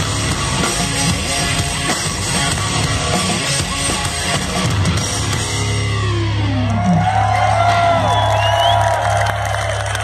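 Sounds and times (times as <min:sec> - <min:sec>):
crowd cheering and whooping: 0:06.0 - 0:10.0.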